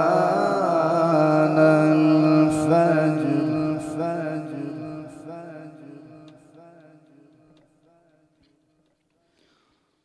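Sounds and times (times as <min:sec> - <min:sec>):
man reciting melodically over loudspeaker: 0:00.0 - 0:07.6.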